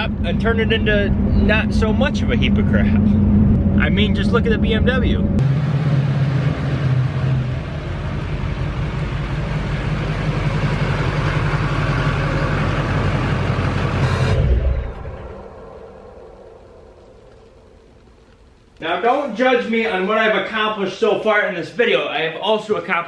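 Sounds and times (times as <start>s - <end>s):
pickup engine idling: 0.0s - 6.8s, 7.5s - 14.2s.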